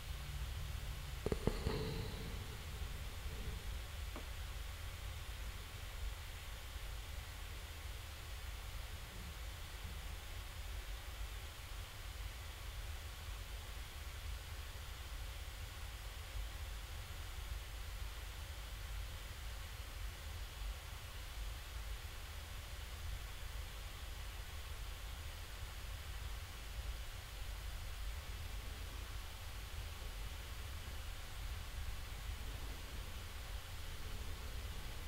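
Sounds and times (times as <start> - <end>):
faint even hiss: 0.0 - 35.0
low hum: 1.1 - 4.2.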